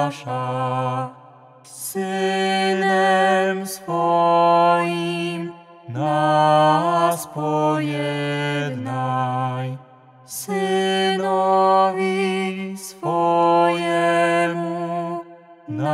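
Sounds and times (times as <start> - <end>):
voices chanting slowly: 0.0 - 15.9.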